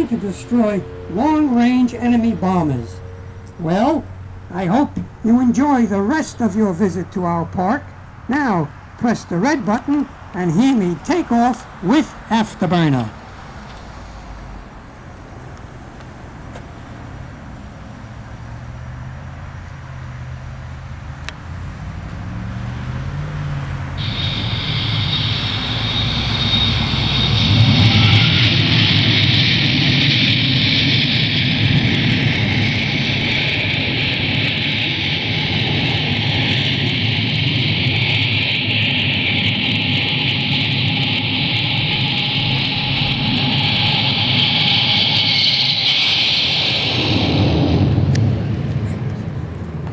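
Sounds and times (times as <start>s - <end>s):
jet takeoff over loudspeaker: 0.0s - 49.9s.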